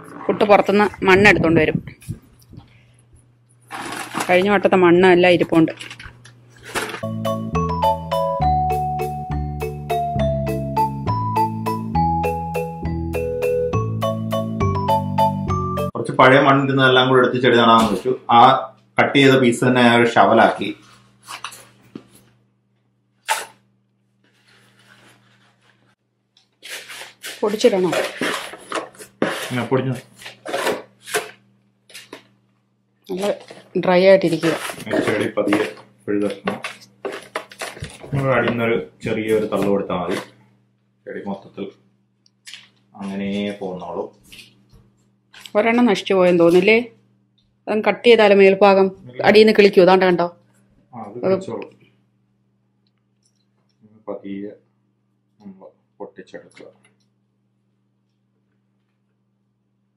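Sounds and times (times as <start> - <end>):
steady low hum: 0.0 - 7.2.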